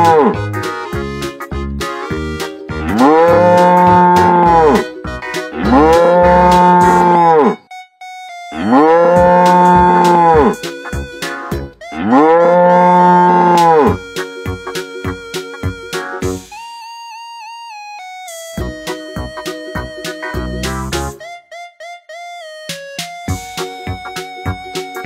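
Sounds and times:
cow mooing: 0.0 - 0.4, 2.8 - 4.8, 5.5 - 7.6, 8.6 - 10.6, 11.9 - 14.0
background music with a beat: 0.0 - 12.6, 13.4 - 16.9, 18.0 - 25.0.

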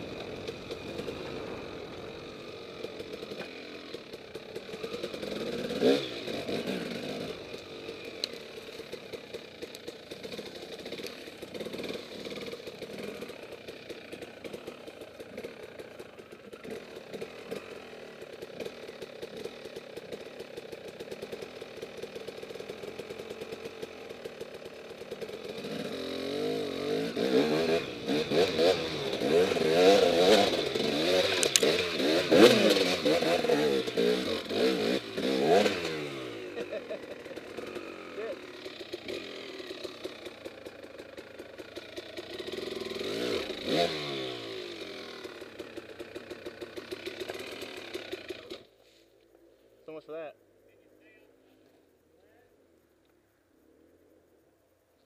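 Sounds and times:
dirt bike engine revving: 0.0 - 49.0.

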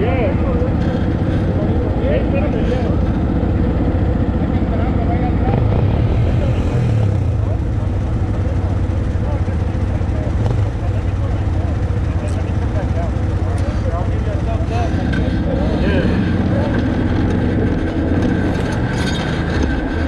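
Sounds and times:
atv engines idling: 0.0 - 20.0
faint voices: 0.0 - 20.0.

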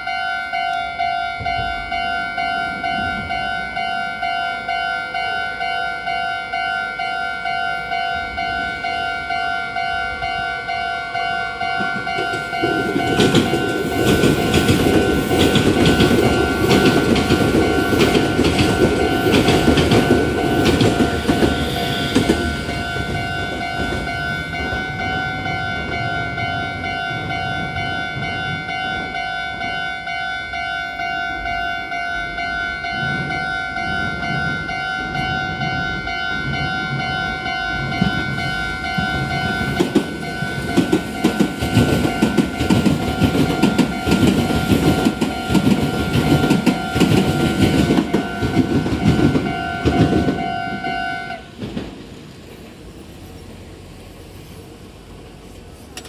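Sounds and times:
level crossing warning bell: 0.0 - 51.8
train wheels clattering over rails: 11.2 - 29.8, 32.6 - 53.7.

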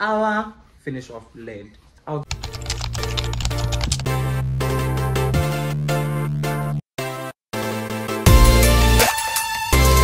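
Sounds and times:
rapid keyboard typing: 2.3 - 4.1
music with low bass note: 3.7 - 6.8.

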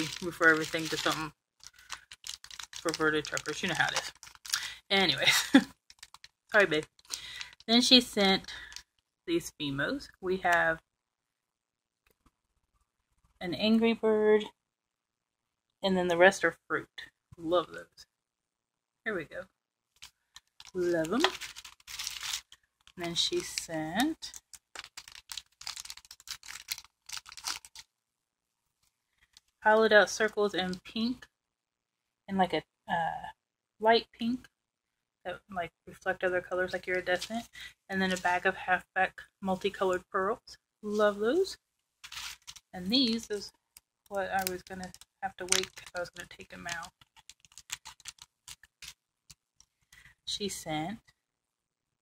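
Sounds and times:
plastic bags and paper crinkling: 0.0 - 9.0, 20.0 - 27.9, 42.0 - 49.9.

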